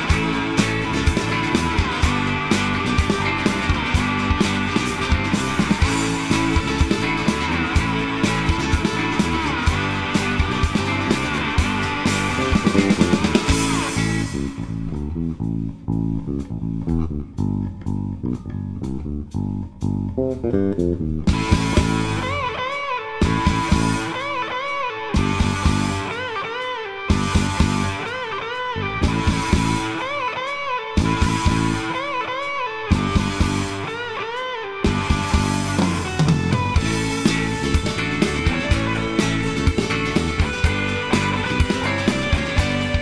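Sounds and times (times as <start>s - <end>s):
bass guitar riff: 0.0s - 43.0s
drums: 0.0s - 43.0s
electric guitar lead: 0.0s - 43.0s.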